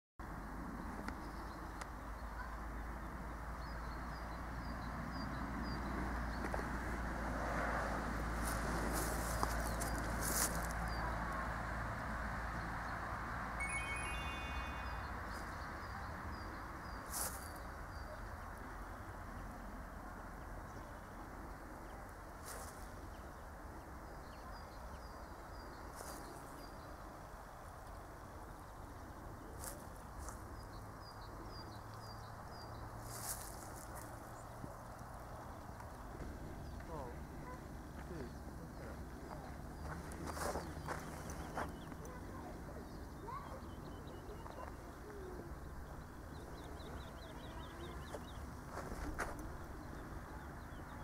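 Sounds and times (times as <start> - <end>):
high clear chime tones: 13.6 - 15.6
small bird chirping: 13.6 - 16.5.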